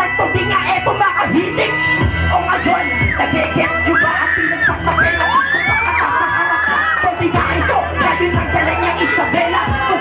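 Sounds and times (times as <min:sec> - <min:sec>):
beatboxing into microphone: 0:00.0 - 0:10.0.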